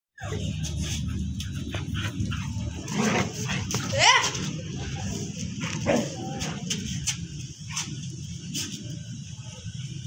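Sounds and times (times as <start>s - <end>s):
dogs whining and yipping: 0.2s - 2.8s
steady low rumble: 0.2s - 10.0s.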